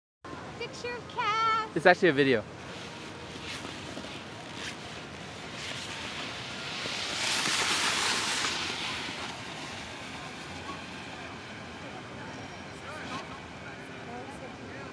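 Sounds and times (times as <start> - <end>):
snowboard scraping on snow: 2.6 - 11.6.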